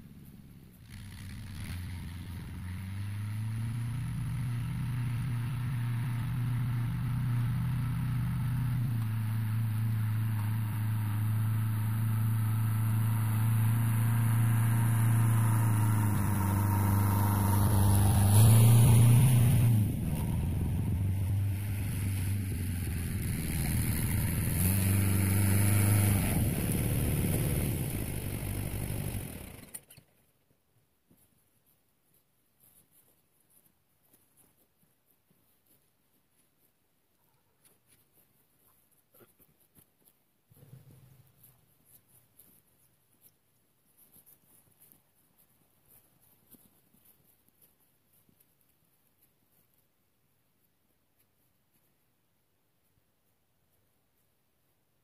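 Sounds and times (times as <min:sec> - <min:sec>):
tractor diesel engine running: 0:00.9 - 0:29.8.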